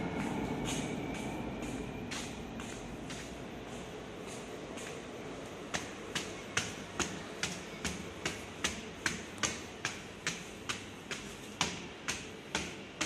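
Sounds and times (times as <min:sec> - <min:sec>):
footsteps climbing stairs: 0:00.0 - 0:13.0.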